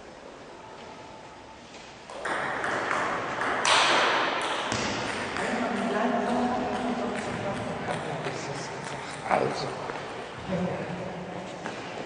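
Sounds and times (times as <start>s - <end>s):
noisy din in echoing hall: 0.0s - 12.0s.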